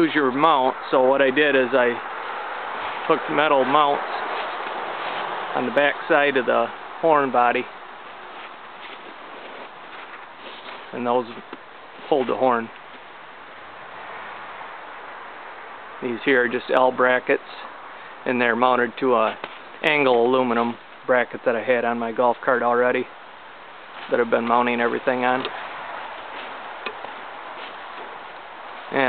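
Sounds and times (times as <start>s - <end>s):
outdoor background hiss: 0.0s - 29.0s.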